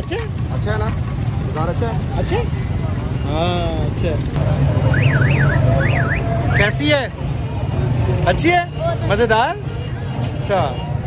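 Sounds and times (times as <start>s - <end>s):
high siren-like warble: 4.8s - 6.8s.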